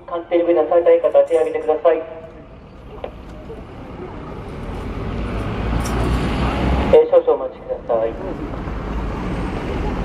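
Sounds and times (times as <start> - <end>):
vehicle approaching on street: 0.7 - 10.0.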